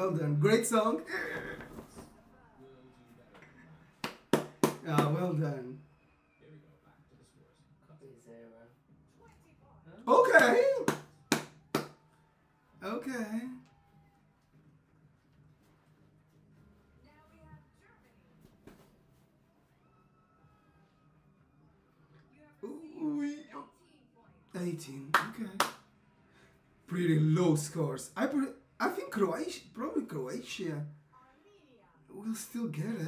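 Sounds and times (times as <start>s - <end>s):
sharp hand claps: 4.0s - 5.4s, 10.2s - 12.0s, 25.1s - 25.9s.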